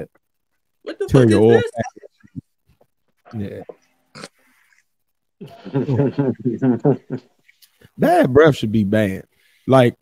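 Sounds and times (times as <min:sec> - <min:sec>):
man speaking: 0:01.0 - 0:02.4, 0:03.3 - 0:03.8, 0:08.0 - 0:10.0
man laughing: 0:01.1 - 0:02.4, 0:05.4 - 0:07.3.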